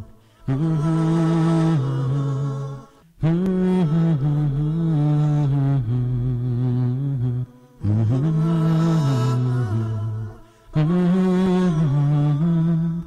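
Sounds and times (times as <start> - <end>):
low voice chanting slowly: 0.0 - 13.0.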